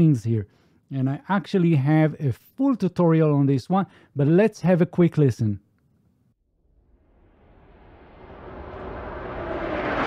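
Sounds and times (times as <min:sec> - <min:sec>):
rushing riser noise: 0:06.8 - 0:10.0.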